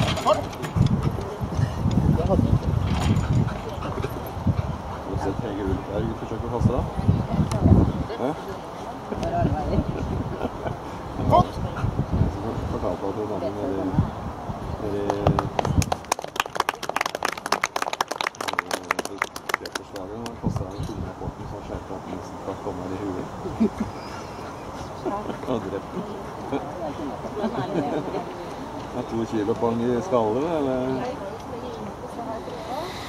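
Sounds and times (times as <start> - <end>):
man talking: 18.5 - 23.6, 25.3 - 26.0.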